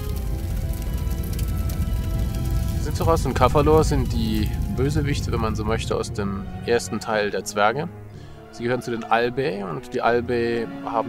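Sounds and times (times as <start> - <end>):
low rumble: 0.0 - 8.8
noisy crackle: 0.0 - 9.6
music of sustained notes: 0.0 - 11.0.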